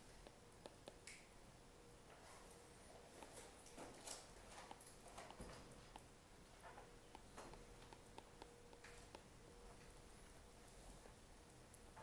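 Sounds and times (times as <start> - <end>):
faint steady hum: 0.0 - 12.0
soft hiss: 0.0 - 12.0.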